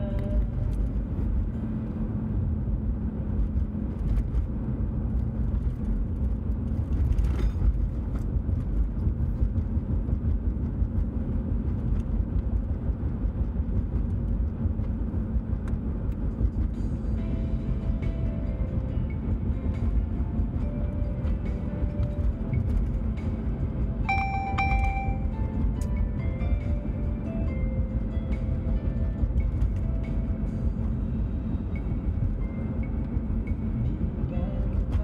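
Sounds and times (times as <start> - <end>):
car interior road and engine noise: 0.0 - 35.0.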